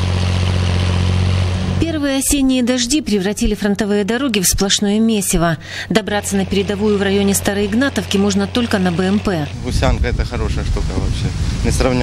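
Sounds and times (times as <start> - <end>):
armored vehicle engine driving: 0.0 - 12.0.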